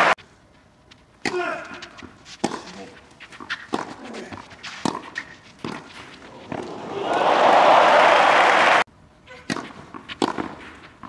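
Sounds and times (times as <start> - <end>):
tennis racquet hitting ball: 1.2 - 6.7, 9.3 - 11.0.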